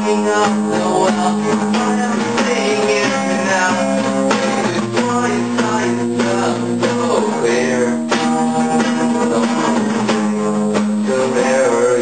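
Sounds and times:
acoustic guitar strummed: 0.0 - 12.0.

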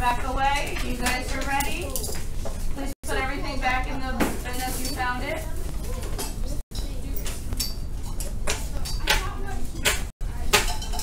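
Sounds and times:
children chattering: 8.7 - 9.8.

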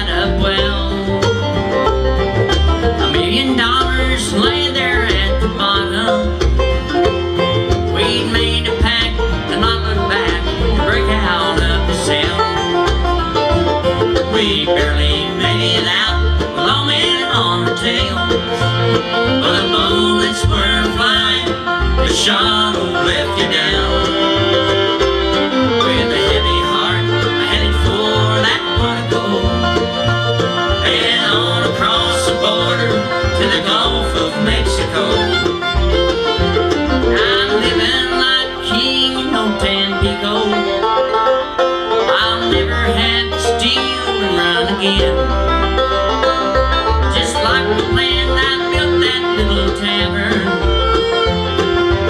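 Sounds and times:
bluegrass band playing: 0.0 - 52.0.

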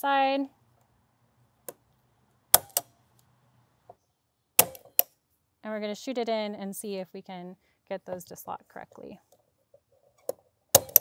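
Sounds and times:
point driver snapping: 10.2 - 11.0.

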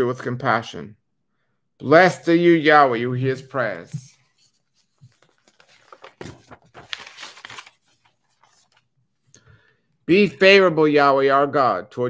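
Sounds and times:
paper rustling: 3.6 - 8.9
paper bump: 4.9 - 8.7.

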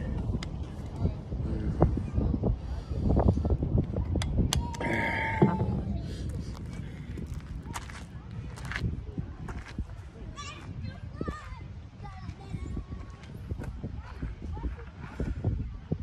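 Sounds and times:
distant children playing: 0.0 - 16.0
wind rumble on microphone: 0.0 - 16.0
footsteps on gravel: 6.3 - 10.7.

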